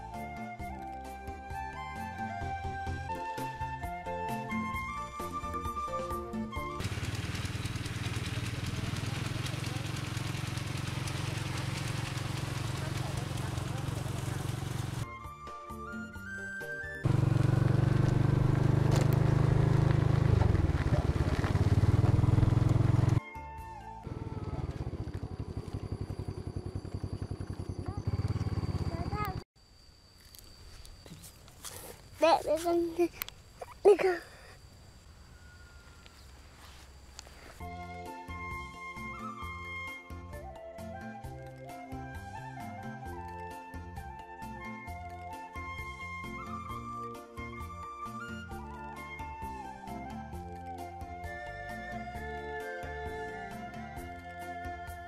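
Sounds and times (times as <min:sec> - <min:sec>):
motorbike engine running: 0:06.8 - 0:15.1, 0:17.0 - 0:23.2, 0:24.0 - 0:29.4.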